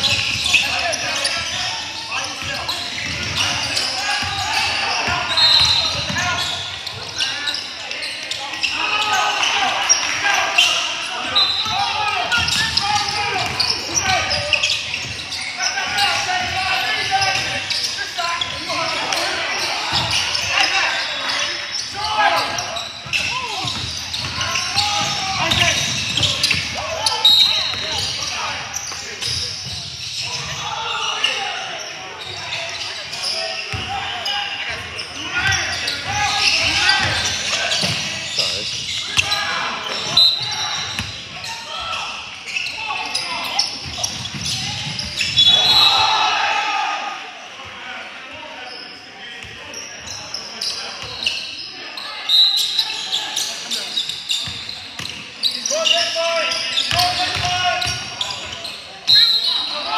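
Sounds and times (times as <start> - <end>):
shoe squeaks: 0.0 - 46.2, 48.6 - 59.9
voices echoing in hall: 0.0 - 59.9.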